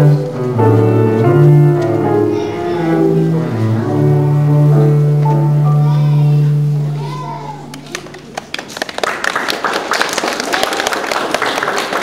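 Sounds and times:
piano and double bass chord: 0:00.0 - 0:07.7
young children's voices: 0:02.1 - 0:03.9, 0:05.6 - 0:08.3
audience clapping: 0:07.7 - 0:12.0.

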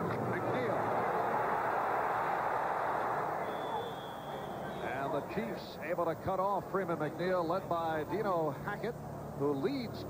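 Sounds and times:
stadium crowd roar: 0:00.0 - 0:05.8
referee whistle: 0:03.3 - 0:05.0.

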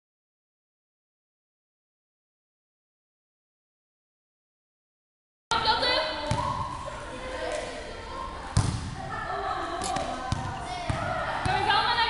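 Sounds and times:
volleyball hits echoing: 0:05.5 - 0:07.7, 0:08.4 - 0:12.0
children's voices: 0:05.5 - 0:12.0.

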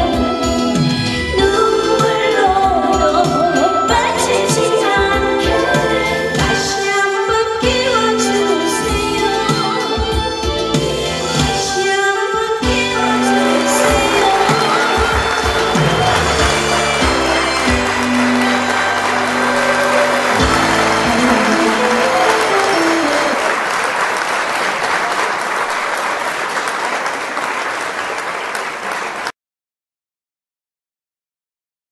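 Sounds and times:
instrumental song accompaniment: 0:00.0 - 0:23.5
audience applause: 0:13.0 - 0:29.3.

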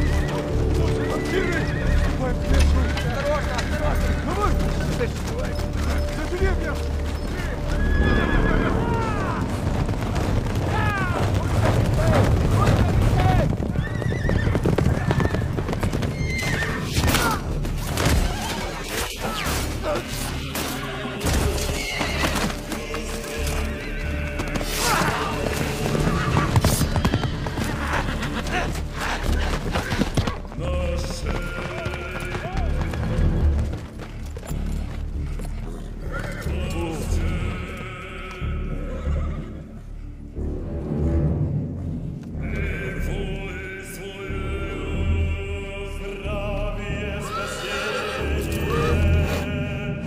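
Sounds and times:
horses neighing: 0:00.0 - 0:34.0, 0:35.6 - 0:36.7, 0:38.6 - 0:39.8, 0:47.2 - 0:49.5
horses galloping hooves: 0:00.0 - 0:39.6
film score music: 0:00.0 - 0:50.0.

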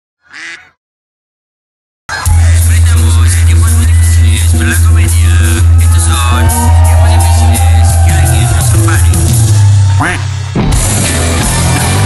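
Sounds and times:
duck quack: 0:00.2 - 0:00.8, 0:09.9 - 0:10.3.

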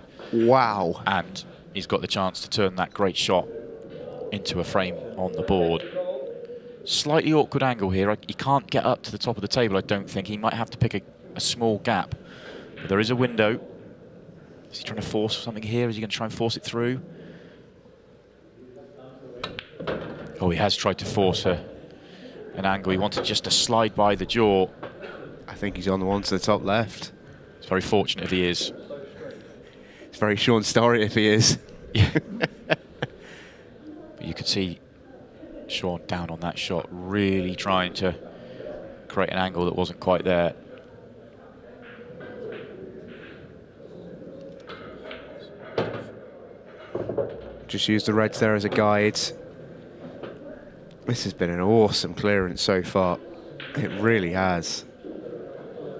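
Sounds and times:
room murmur: 0:00.0 - 0:55.9
pool balls clicking together: 0:19.4 - 0:20.4.

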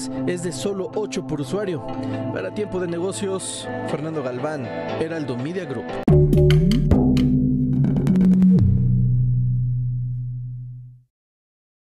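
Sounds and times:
low steady synth tone: 0:06.1 - 0:11.0.

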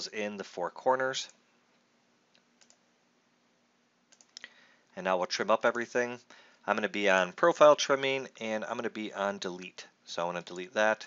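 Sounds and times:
computer mouse clicks: 0:02.3 - 0:02.8, 0:04.1 - 0:04.5.

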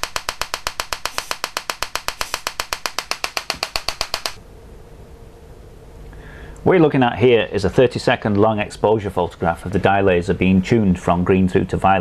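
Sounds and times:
electrical discharge snaps: 0:00.0 - 0:04.4
faint steady hum: 0:00.0 - 0:12.0.

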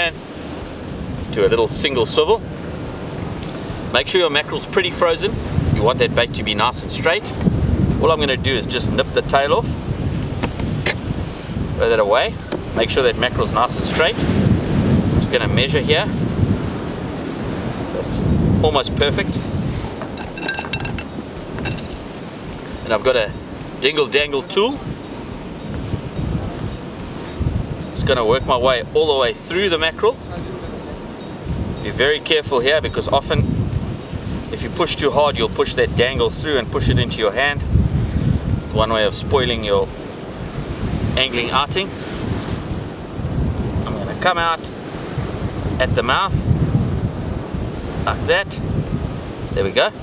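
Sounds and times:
surf washing: 0:00.0 - 0:50.0
wind buffeting microphone: 0:00.0 - 0:50.0
light metallic clinks: 0:20.0 - 0:22.1.

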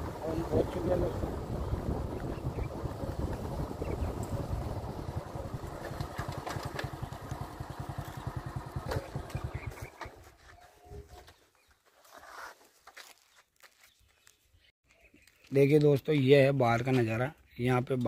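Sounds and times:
motorcycle engine running: 0:00.0 - 0:10.4.

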